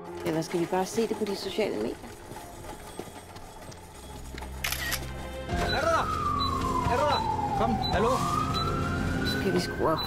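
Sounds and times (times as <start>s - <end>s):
camera shutter sound: 4.6s - 5.1s.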